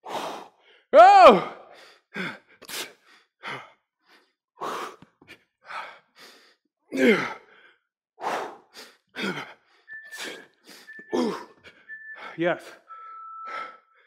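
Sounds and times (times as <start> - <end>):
man panting hard: 0.0 - 12.3
interval timer beeps: 9.9 - 13.8.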